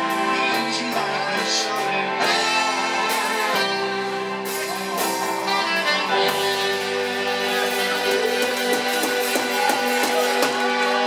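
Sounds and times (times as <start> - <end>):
electric guitar: 0.0 - 11.0
keyboard: 0.0 - 11.0
saxophone: 0.0 - 11.0
steady drum beat: 0.0 - 11.0.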